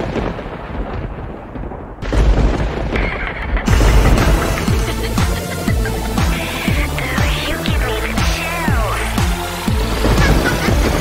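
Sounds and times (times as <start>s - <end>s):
rolling thunder: 0.0s - 6.1s, 9.7s - 11.0s.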